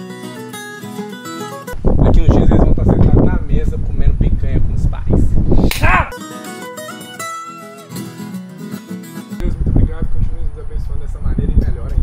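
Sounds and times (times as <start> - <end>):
acoustic guitar plucked notes: 0.0 - 1.8, 6.0 - 9.4
wind rumble on microphone: 1.8 - 6.1, 9.4 - 12.0.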